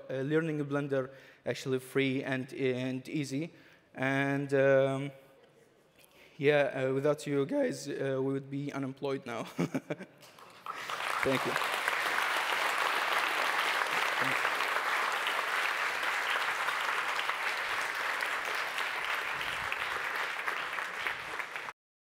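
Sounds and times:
audience applauding: 0:10.2 - 0:21.8.

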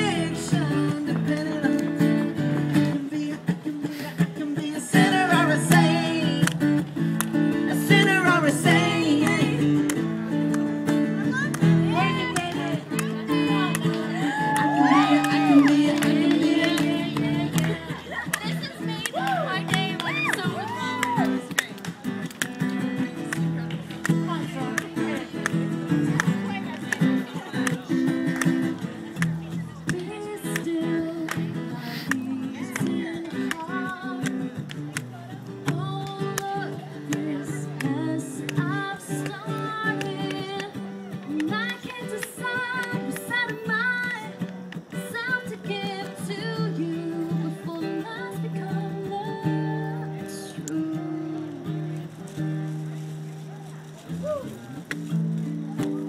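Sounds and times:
woman singing into microphone: 0:00.0 - 0:06.8, 0:07.6 - 0:09.8, 0:11.3 - 0:18.6, 0:29.9 - 0:44.4, 0:45.0 - 0:51.8
acoustic guitar strumming: 0:00.0 - 0:56.0.

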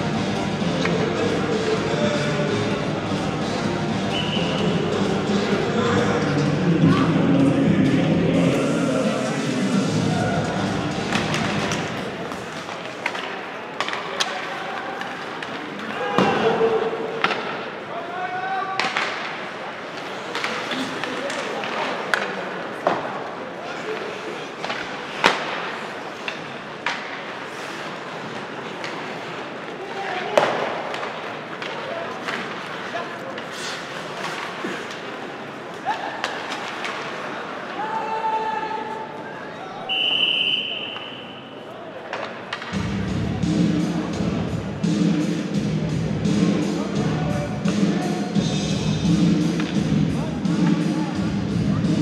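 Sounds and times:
murmur of spectators: 0:00.0 - 0:52.0
hockey sticks and puck clacking: 0:00.6 - 0:01.8, 0:10.5 - 0:17.9, 0:18.7 - 0:38.0, 0:42.0 - 0:45.5, 0:47.6 - 0:48.2, 0:49.0 - 0:51.0.

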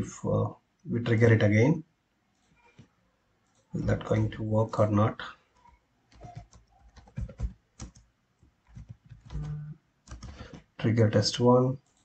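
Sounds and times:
computer keyboard typing: 0:05.6 - 0:10.7.

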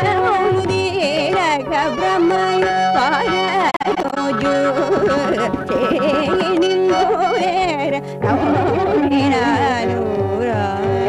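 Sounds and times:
violin: 0:00.0 - 0:11.0
woman singing ornamented phrases: 0:00.0 - 0:11.0.

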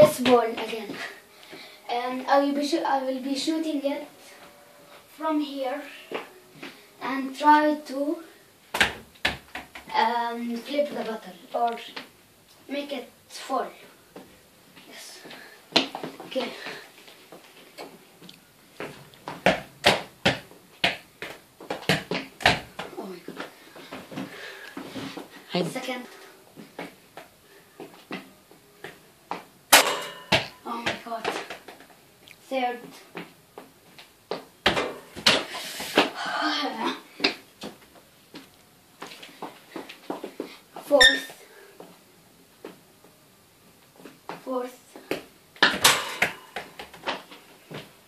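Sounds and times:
footsteps: 0:00.0 - 0:02.4
football being kicked and bouncing: 0:08.7 - 0:09.9, 0:18.8 - 0:24.3, 0:29.3 - 0:31.8, 0:34.3 - 0:36.2, 0:45.0 - 0:47.9
ball hitting bottle and furniture: 0:29.7 - 0:31.6, 0:34.6 - 0:36.1, 0:45.6 - 0:47.2.

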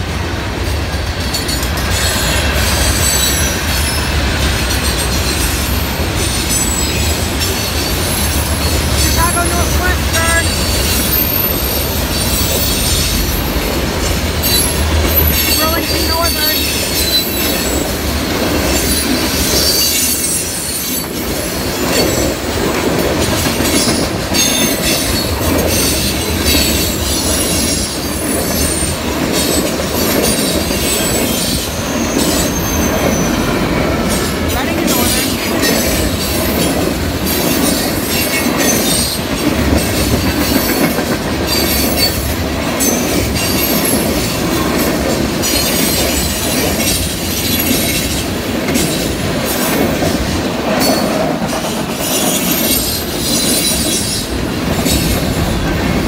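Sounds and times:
train cars rumbling past: 0:00.0 - 0:56.0
wheels clattering over rail joints: 0:00.6 - 0:56.0
wheels squealing: 0:01.3 - 0:09.2, 0:23.7 - 0:36.8.

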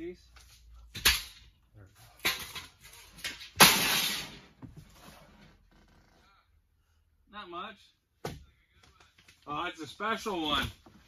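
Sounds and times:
rough crash of window: 0:03.6 - 0:04.6.

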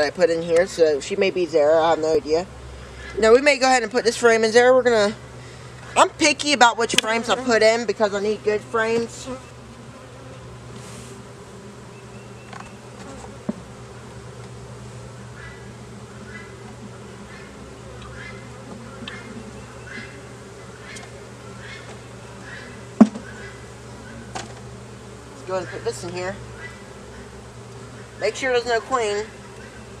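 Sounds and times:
honeybees buzzing: 0:00.0 - 0:30.0
sharp knocks: 0:23.0 - 0:23.3.

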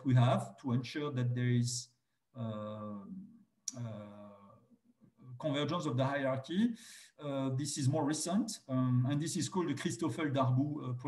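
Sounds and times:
man saying uh: 0:02.4 - 0:04.6, 0:05.4 - 0:11.0.

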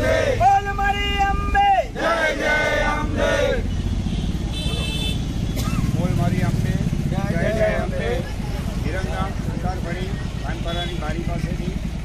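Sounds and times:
vehicle engine rumbling: 0:00.0 - 0:12.0
men talking: 0:05.6 - 0:11.9.

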